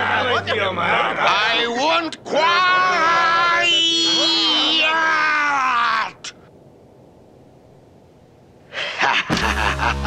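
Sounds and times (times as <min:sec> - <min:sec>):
man yelling in rage: 0:01.2 - 0:06.4
faint hiss: 0:05.9 - 0:09.4.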